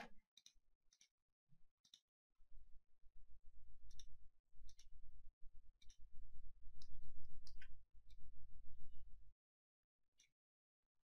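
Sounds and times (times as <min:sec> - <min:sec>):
computer mouse clicking: 0:00.0 - 0:01.1, 0:01.8 - 0:02.0, 0:04.7 - 0:04.9.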